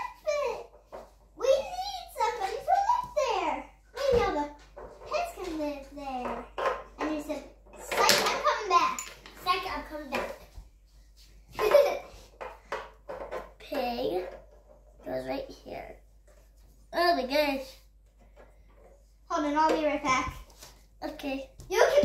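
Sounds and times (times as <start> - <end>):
children talking: 0.0 - 0.7, 1.4 - 10.4, 21.0 - 22.0.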